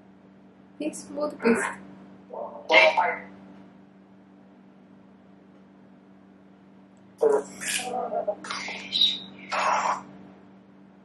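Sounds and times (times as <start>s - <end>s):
faint steady hum: 0.0s - 11.0s
phone speaker chirp: 7.2s - 10.0s.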